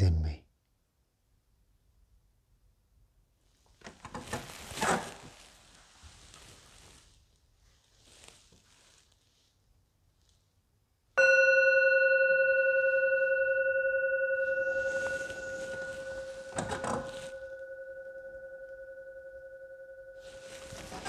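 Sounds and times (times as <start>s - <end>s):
singing bowl ringing: 11.2s - 21.0s.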